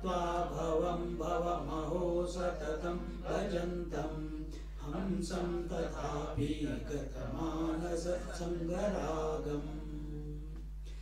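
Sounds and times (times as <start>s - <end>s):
man chanting melodically: 0.0s - 10.6s
steady low hum: 0.0s - 11.0s.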